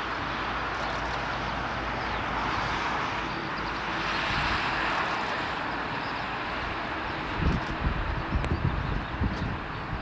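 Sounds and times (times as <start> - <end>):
jet engine rushing: 0.0 - 10.0.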